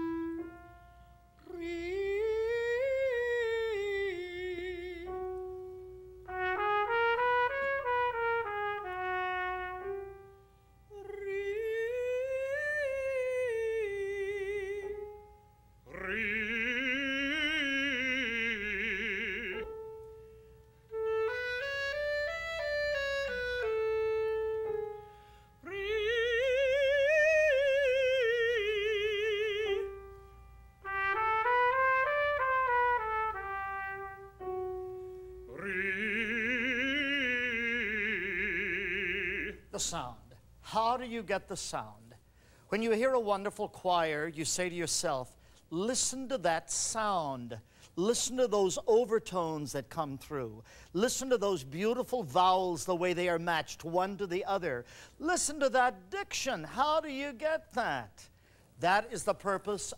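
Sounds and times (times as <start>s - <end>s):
trumpet melody: 0.0s - 1.2s, 5.0s - 10.6s, 20.8s - 26.3s, 28.9s - 37.4s
clarinet melody: 0.0s - 14.2s, 14.9s - 39.6s.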